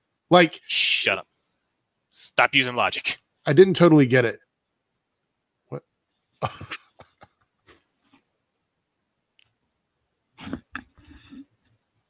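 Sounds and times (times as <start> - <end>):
man laughing: 6.4 - 7.4.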